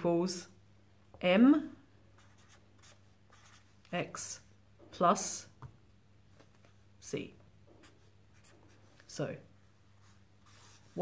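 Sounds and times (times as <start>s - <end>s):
marker pen writing on paper: 2.2s - 3.7s, 7.7s - 8.8s, 10.0s - 11.0s.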